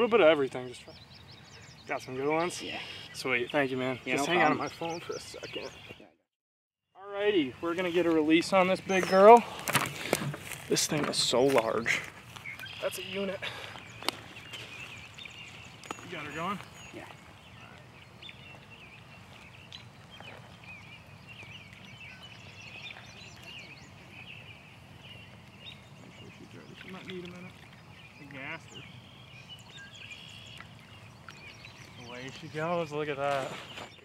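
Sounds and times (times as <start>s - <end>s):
faint bird chirps: 12.4s - 34.0s.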